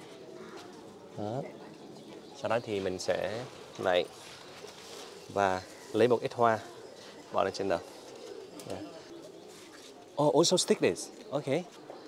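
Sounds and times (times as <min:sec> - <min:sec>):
pigeon cooing: 0:00.0 - 0:12.0.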